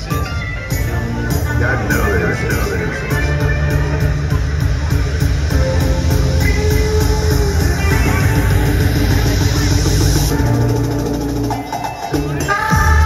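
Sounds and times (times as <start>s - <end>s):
bass-heavy rock backing track: 0.0s - 13.0s
saxophone playing long notes: 5.7s - 11.1s.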